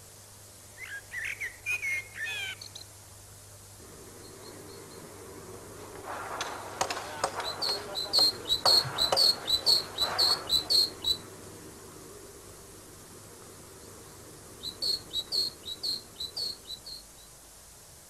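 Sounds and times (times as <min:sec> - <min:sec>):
bird chirping: 0:00.8 - 0:03.0, 0:04.0 - 0:11.4, 0:12.1 - 0:17.5
faint clicks and rustling: 0:03.8 - 0:14.6.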